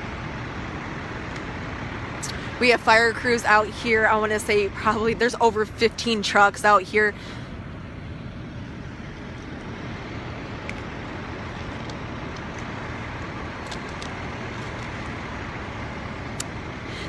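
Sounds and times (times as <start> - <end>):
diesel engines rumbling: 0.0 - 17.0.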